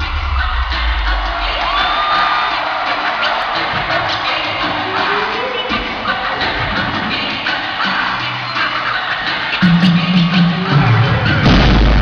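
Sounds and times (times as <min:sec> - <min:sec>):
crowd cheering and shouting: 0:00.0 - 0:12.0
heavy bass hip-hop music: 0:00.0 - 0:12.0.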